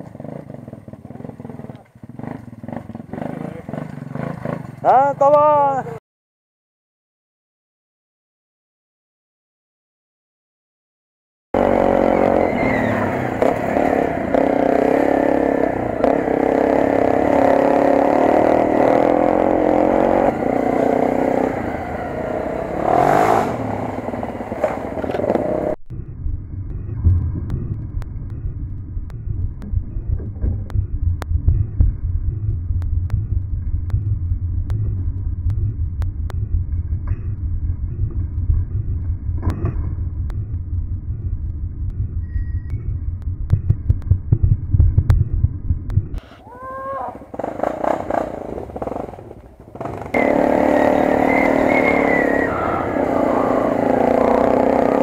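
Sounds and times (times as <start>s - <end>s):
clatter from rough ground: 0.0s - 4.9s
motorcycle engine revving: 0.0s - 6.0s, 11.6s - 55.0s.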